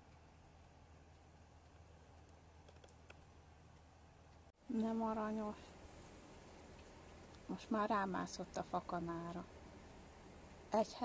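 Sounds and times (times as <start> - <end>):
faint clicks: 0.0 - 4.5
faint low hum: 0.0 - 11.0.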